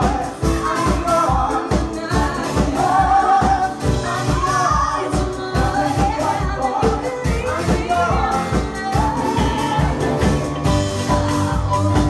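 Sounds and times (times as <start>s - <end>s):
backing singers: 0.0s - 12.0s
bass: 0.0s - 12.0s
drums keeping a steady beat: 0.0s - 12.0s
woman singing lead vocal: 0.0s - 12.0s.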